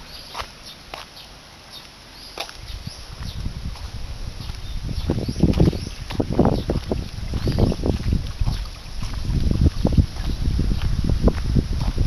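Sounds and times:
wind buffeting microphone: 2.6s - 12.0s.

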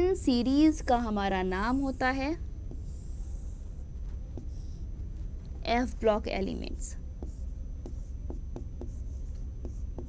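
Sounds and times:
steady low hum: 0.0s - 10.0s
pen tapping and scraping on board: 7.2s - 10.0s.

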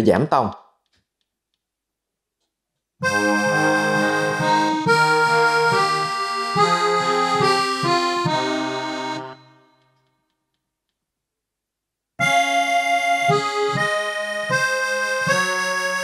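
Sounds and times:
digital piano chords and melody: 3.0s - 9.8s, 12.2s - 16.0s.

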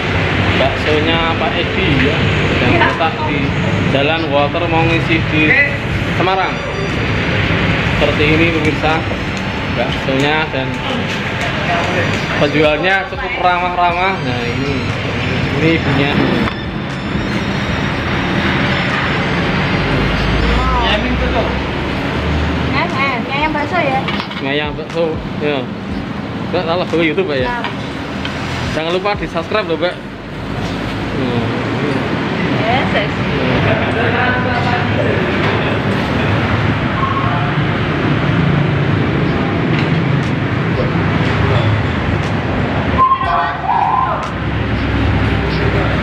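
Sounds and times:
people's voices: 0.0s - 46.0s
road traffic rumble: 0.0s - 46.0s
faint voices: 28.8s - 46.0s.

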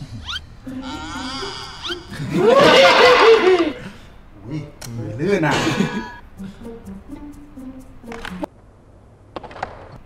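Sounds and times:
men laughing loudly: 2.0s - 4.0s, 5.5s - 6.1s.

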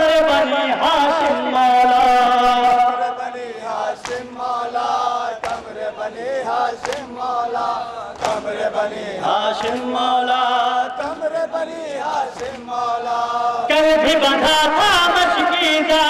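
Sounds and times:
crowd of men chanting: 0.0s - 16.0s
man singing a lament through a pa: 0.0s - 16.0s.

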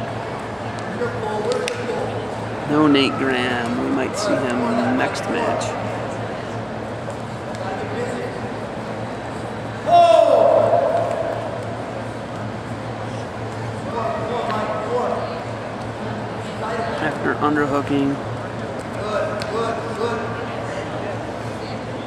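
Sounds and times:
crowd voices: 0.0s - 22.0s
steady low hum: 0.0s - 22.0s
loud drawn-out shout: 9.8s - 11.7s.

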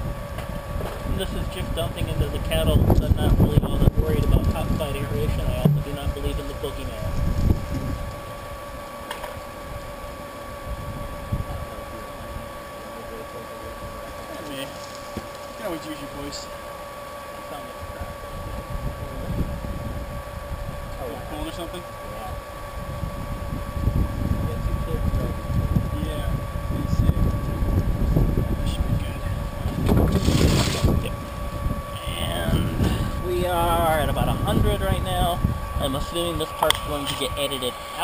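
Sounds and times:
wind buffeting microphone: 0.0s - 8.6s, 9.6s - 12.4s, 17.8s - 21.4s, 22.3s - 37.4s
electric pump humming: 0.0s - 38.0s.

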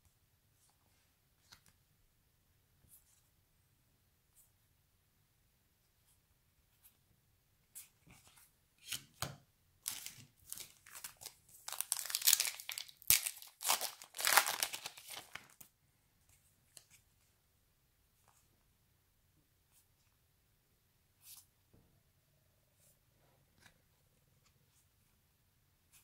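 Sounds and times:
card pack wrapper tearing and crinkling: 9.9s - 15.6s.

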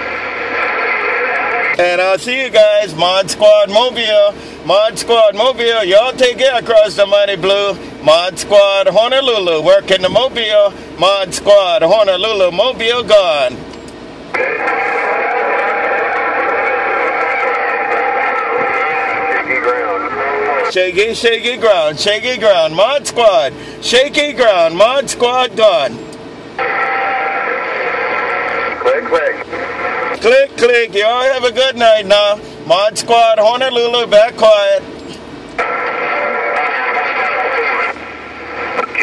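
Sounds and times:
radio static hiss: 0.0s - 4.9s, 14.3s - 22.0s, 24.5s - 34.9s, 35.6s - 39.0s
man's voice over radio: 0.4s - 13.6s, 14.3s - 26.0s, 26.6s - 34.9s, 35.6s - 38.0s, 38.6s - 39.0s.

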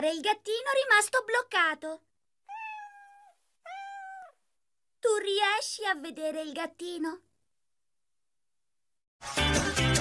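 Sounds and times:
cartoon kitten meowing: 2.5s - 4.4s.

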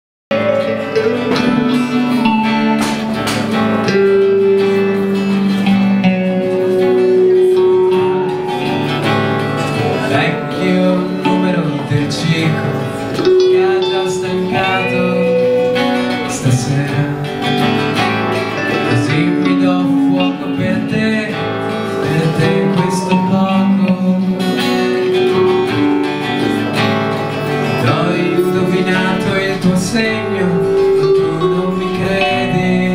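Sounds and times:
acoustic and electric guitars playing: 0.3s - 32.9s.

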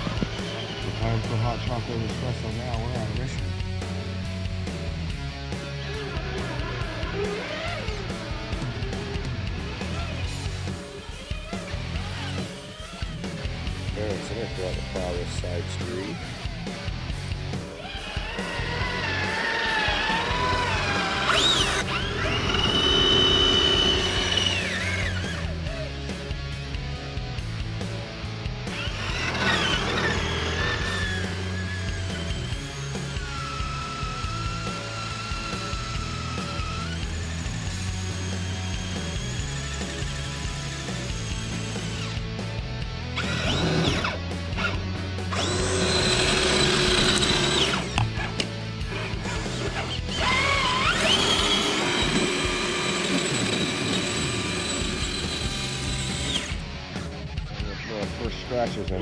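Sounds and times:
electric motor and gear whine: 0.0s - 3.8s, 4.4s - 16.6s, 17.6s - 26.1s, 28.6s - 57.1s
background music: 0.0s - 59.0s.

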